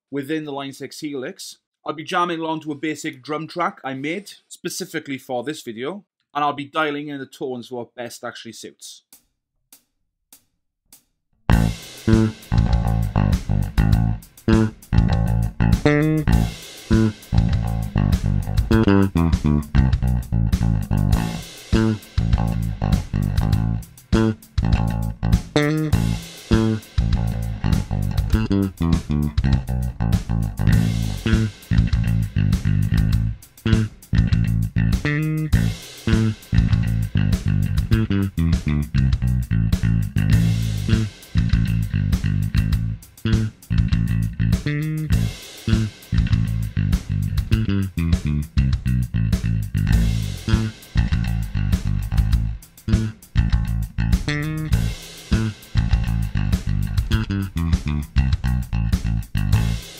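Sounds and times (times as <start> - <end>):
electric bass guitar riffing: 11.5 - 59.9
programmed drum beat: 11.5 - 59.9.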